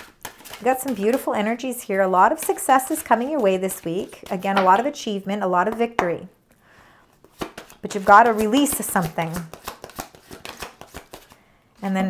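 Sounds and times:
cards being shuffled by hand: 0.0 - 1.4, 7.2 - 11.9.

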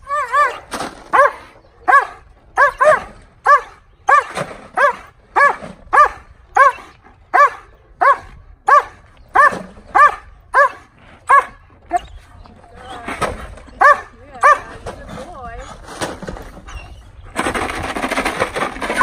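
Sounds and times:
dog barking rhythmically: 1.2 - 11.6, 13.8 - 14.6.

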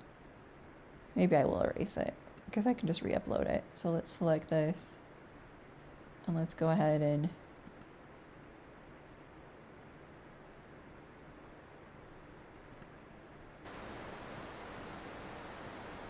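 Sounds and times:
microphone hiss: 0.0 - 16.0.

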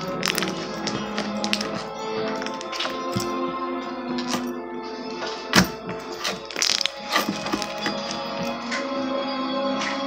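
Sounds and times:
background music: 0.0 - 10.0
slime crackling clicks: 6.4 - 8.0.

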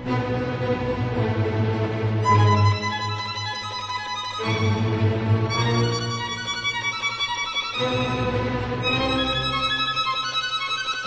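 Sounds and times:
instrumental music with held notes: 0.0 - 11.0.

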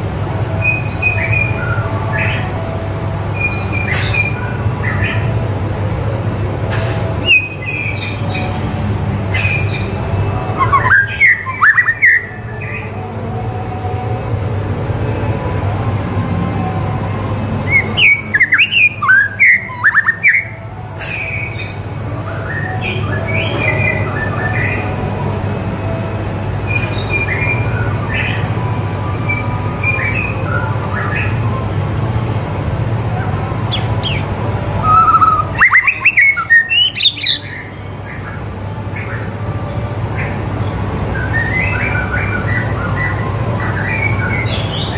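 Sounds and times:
bird singing whistled notes: 10.6 - 12.9, 17.2 - 21.8, 33.7 - 40.0.

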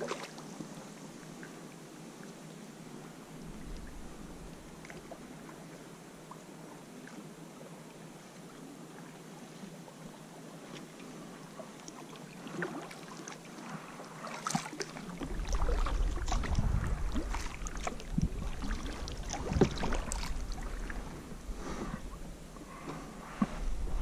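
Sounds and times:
kayak paddle splashing in water: 0.0 - 0.4, 12.4 - 22.1
low rumble: 3.4 - 5.3, 15.2 - 24.0.

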